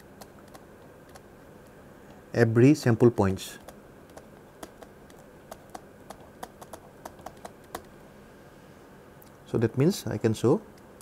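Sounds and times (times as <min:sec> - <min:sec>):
stylus tapping on pen tablet: 0:03.6 - 0:07.9.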